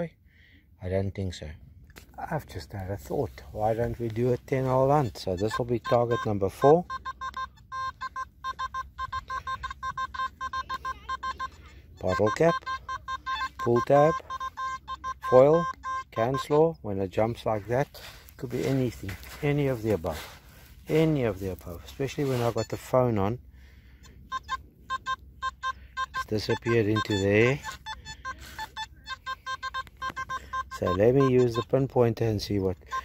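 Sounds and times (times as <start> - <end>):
metal detector short beeps: 3.1 - 23.4, 24.0 - 33.0.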